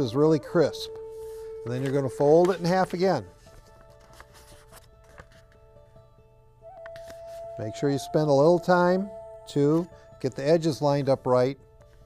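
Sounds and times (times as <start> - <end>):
soft background music: 0.0 - 12.0
paper crinkling: 0.9 - 5.6.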